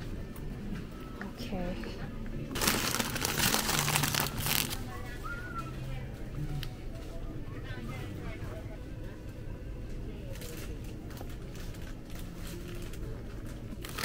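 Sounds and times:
faint store background music: 0.0s - 14.0s
plastic snack bags crinkling: 2.5s - 5.0s, 10.6s - 14.0s.

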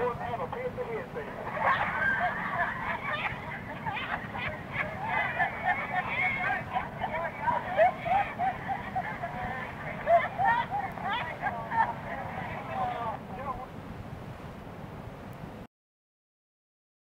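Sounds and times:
passengers chattering and laughing: 0.0s - 13.8s.

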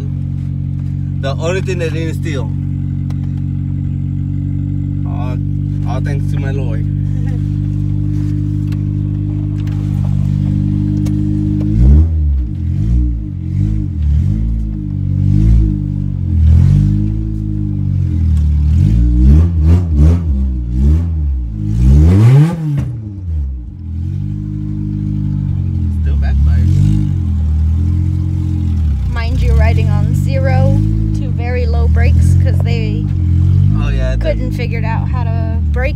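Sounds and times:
car engine idling and revving: 0.0s - 35.9s.

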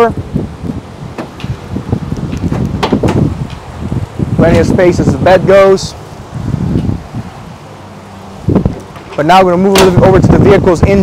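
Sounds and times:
traffic: 0.0s - 11.0s
wind rumbling on microphone: 0.0s - 11.0s.

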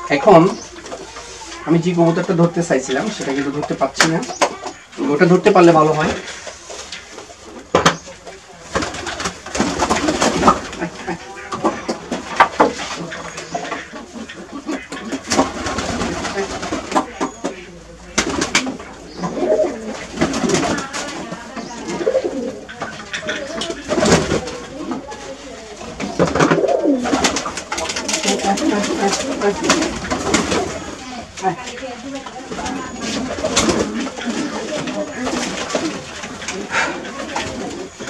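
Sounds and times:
pigeons cooing: 0.0s - 38.0s
flurry of wingbeats: 5.5s - 38.0s.

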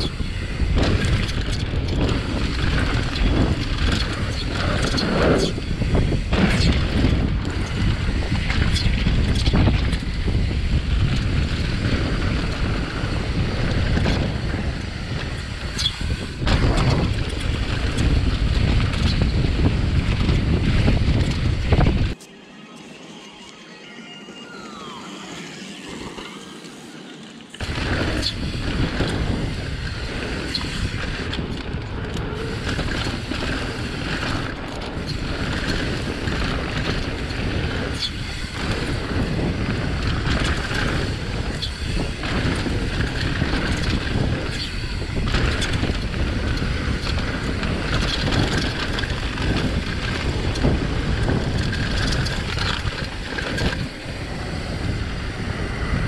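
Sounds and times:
bike clattering over bumps: 0.0s - 22.2s, 27.6s - 56.0s
wind buffeting microphone: 0.0s - 22.2s, 27.6s - 56.0s
faint chirping glides: 22.1s - 28.4s
tyres rolling over dirt: 27.6s - 56.0s.

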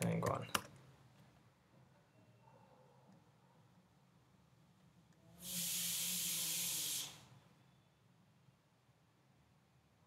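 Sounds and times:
steady hiss: 5.3s - 7.4s.

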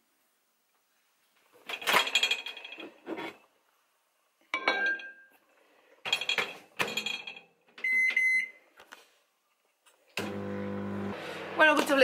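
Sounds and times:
microwave keypad beep: 7.8s - 8.6s
microwave oven humming: 10.2s - 11.6s.

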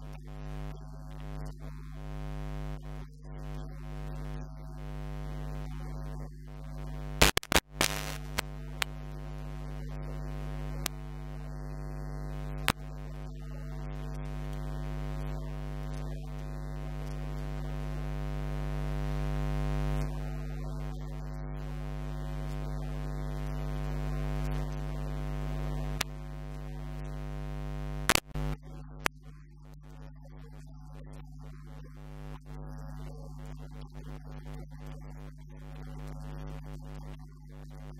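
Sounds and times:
electrical mains hum: 0.0s - 37.9s
sharp crackles: 7.2s - 9.0s, 12.5s - 17.8s, 28.0s - 28.6s.

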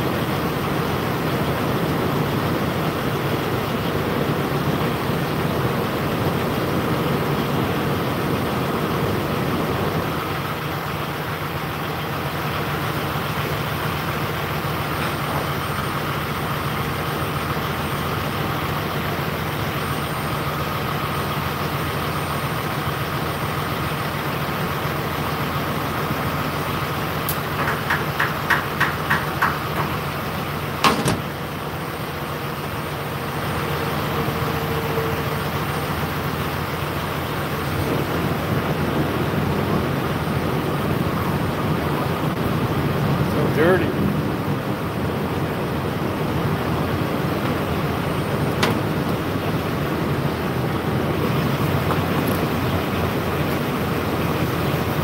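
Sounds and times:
truck engine idling: 0.0s - 55.0s
nozzle clanking: 27.2s - 31.7s, 46.3s - 50.4s.

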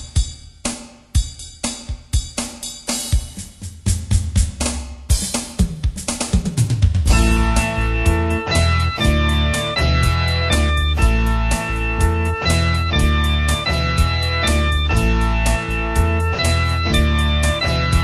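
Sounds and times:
drum kit playing: 0.0s - 18.0s
band playing held notes: 7.1s - 18.0s.

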